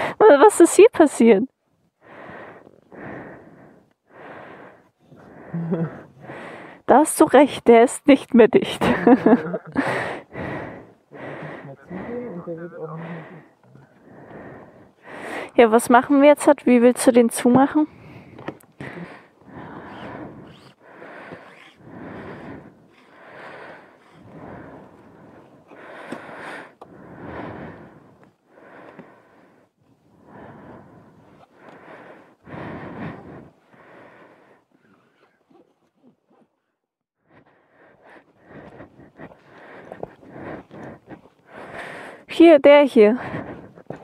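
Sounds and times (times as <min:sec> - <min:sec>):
person breathing close: 0:00.0 - 0:00.2, 0:02.0 - 0:06.9, 0:08.8 - 0:15.7, 0:17.6 - 0:44.0.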